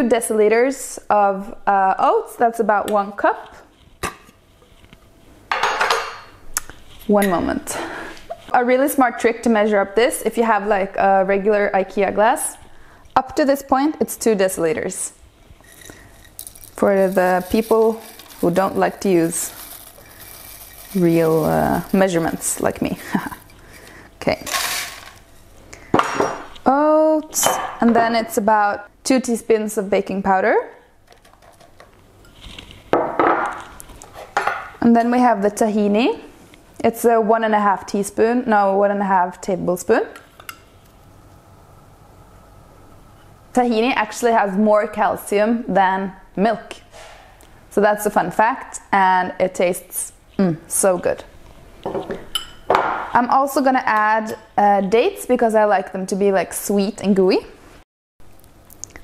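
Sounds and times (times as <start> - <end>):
ceramic bowls and spoon handled: 4.0 - 7.6, 15.6 - 26.6, 40.2 - 40.6, 51.8 - 53.1
dishes clattering: 5.5 - 6.4
oats rattling against glass: 15.6 - 23.6.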